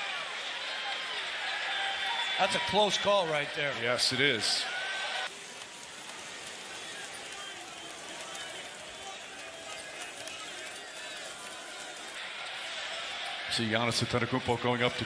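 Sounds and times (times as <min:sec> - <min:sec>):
crowd murmur: 0:03.7 - 0:15.0
faint indistinct voices: 0:04.5 - 0:15.0.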